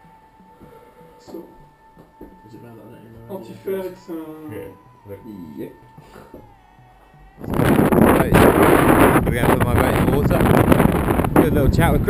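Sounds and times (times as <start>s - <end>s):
wind buffeting microphone: 7.4s - 12.0s.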